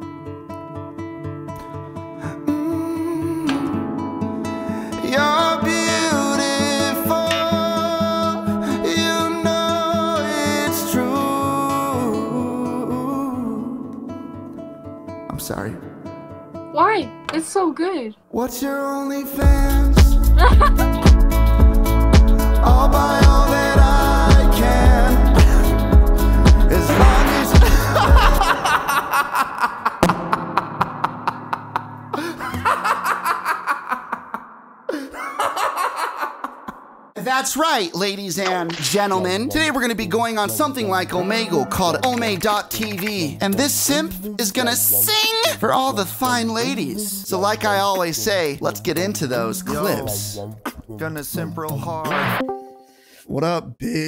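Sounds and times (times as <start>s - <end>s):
acoustic guitar strumming: 0.0s - 17.6s, 19.4s - 29.3s, 30.0s - 33.5s
person singing: 2.2s - 14.0s, 18.4s - 29.1s, 39.1s - 42.4s, 43.3s - 45.7s, 46.4s - 47.5s, 49.4s - 50.8s
man laughing hard: 20.4s - 21.0s, 26.8s - 37.0s.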